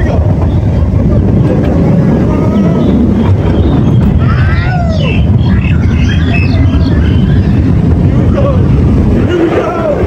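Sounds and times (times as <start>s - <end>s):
roller coaster train rumbling: 0.0s - 10.0s.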